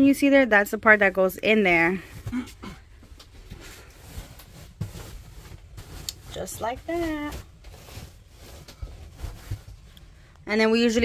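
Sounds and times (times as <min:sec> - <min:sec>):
fabric rustling: 0:01.8 - 0:10.3.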